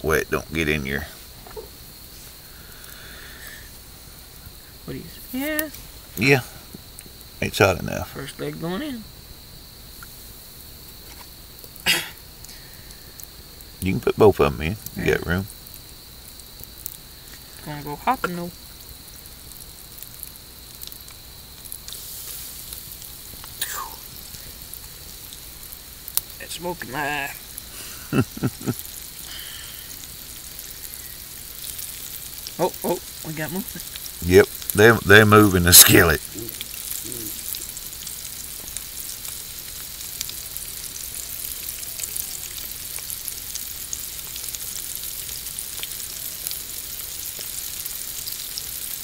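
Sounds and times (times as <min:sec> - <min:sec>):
crickets trilling: 0:00.0 - 0:49.0
food sizzling in hot grease: 0:00.0 - 0:49.0
low background hiss: 0:00.0 - 0:49.0.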